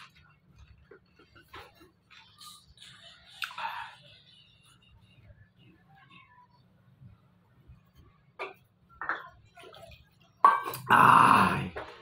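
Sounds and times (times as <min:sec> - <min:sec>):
person burping loudly: 0:10.7 - 0:11.8.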